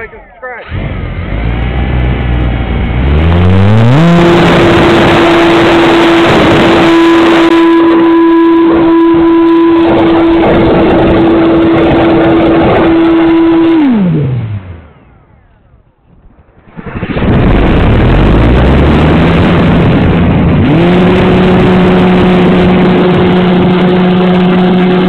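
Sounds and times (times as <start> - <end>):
electric motor and propeller: 0.0 - 25.0
wind rush: 0.0 - 25.0.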